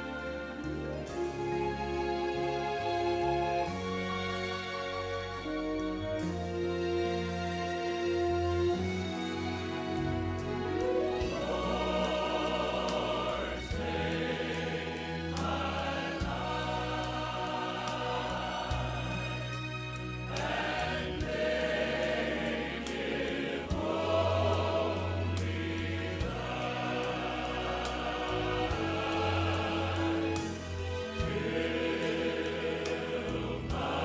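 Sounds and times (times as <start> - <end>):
choir singing a slow piece: 0.0 - 34.0
sustained music with bass notes: 0.0 - 34.0.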